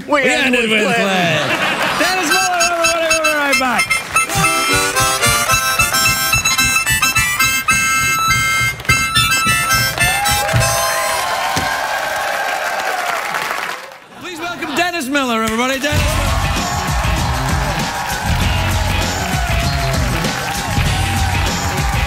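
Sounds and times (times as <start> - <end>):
harmonica playing short notes: 2.1 - 11.3.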